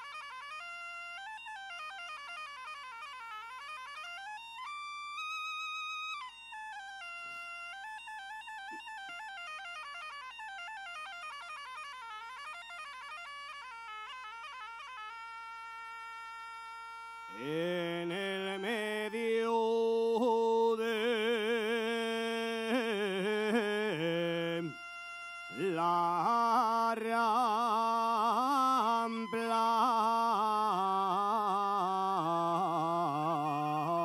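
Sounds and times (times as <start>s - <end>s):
bagpipe melody over drone: 0.0s - 34.0s.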